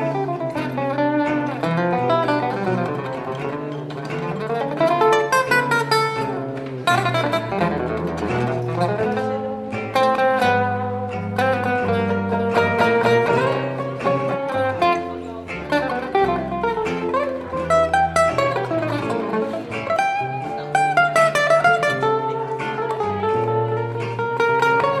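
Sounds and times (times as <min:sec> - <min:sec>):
acoustic guitar plucked lines: 0:00.0 - 0:25.0
plucked double bass walking: 0:00.0 - 0:25.0.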